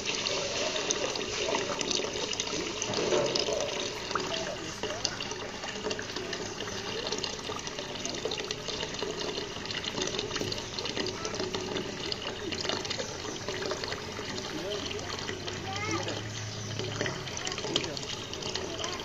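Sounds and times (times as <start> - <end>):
water trickling into pond: 0.0 - 19.0.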